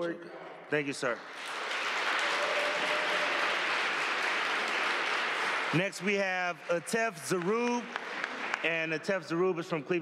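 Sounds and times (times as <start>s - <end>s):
audience applauding: 1.0s - 9.2s.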